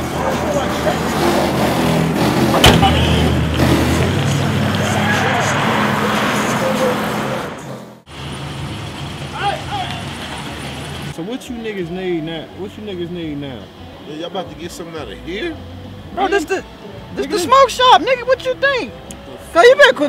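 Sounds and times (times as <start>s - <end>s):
men talking: 0.0s - 1.6s, 2.4s - 7.7s, 9.3s - 10.2s, 11.1s - 20.0s
car engine running: 0.0s - 5.5s
car door shutting: 2.6s - 3.2s.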